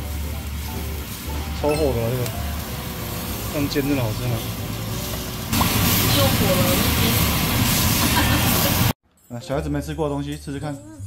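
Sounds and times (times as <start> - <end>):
seafood sizzling in a frying pan: 0.0 - 9.0.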